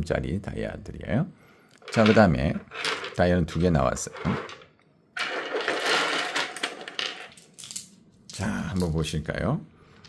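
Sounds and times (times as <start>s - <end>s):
pebbles clattering on a table: 1.8s - 8.0s.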